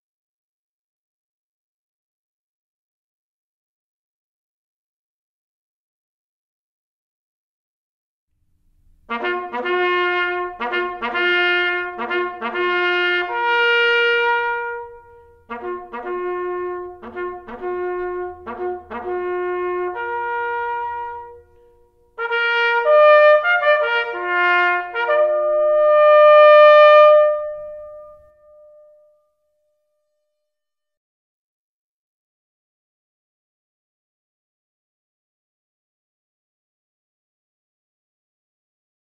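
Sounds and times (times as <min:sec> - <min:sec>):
bugle call on brass horn: 0:09.1 - 0:21.6, 0:22.2 - 0:28.8.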